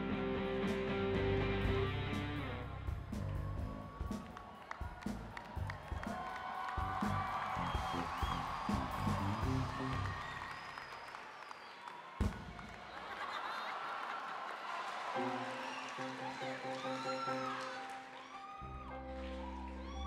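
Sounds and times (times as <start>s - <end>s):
live music low notes: 0.0s - 10.3s
audience cheering and applauding: 3.0s - 20.0s.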